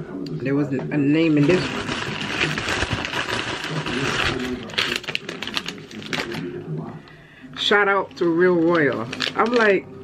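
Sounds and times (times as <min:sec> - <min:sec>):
plastic mailer bag crinkling: 0:01.2 - 0:06.6, 0:08.0 - 0:09.9.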